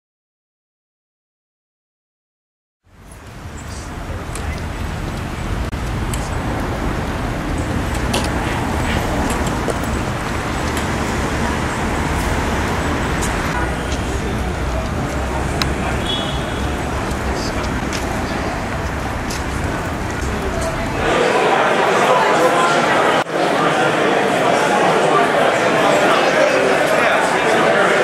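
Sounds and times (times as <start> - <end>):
road traffic rumble: 2.8 - 23.2
background voices: 3.0 - 28.0.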